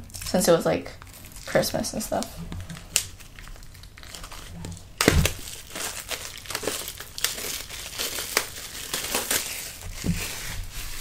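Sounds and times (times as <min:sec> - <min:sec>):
paper pages rustling and crinkling: 0:01.0 - 0:11.0.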